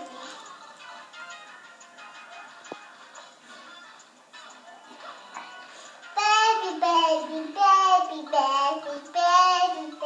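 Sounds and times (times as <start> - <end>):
child singing: 6.2 - 10.0.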